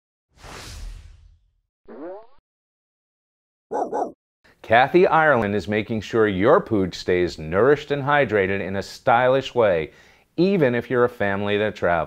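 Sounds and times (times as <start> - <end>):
whoosh: 0.3 - 1.6.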